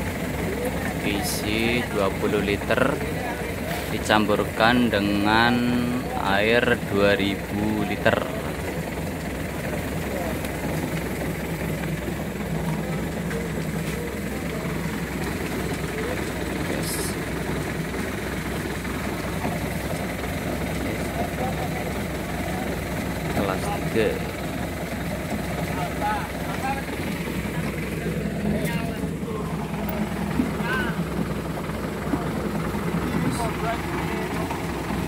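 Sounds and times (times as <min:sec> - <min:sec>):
small engine idling: 0:00.0 - 0:35.0.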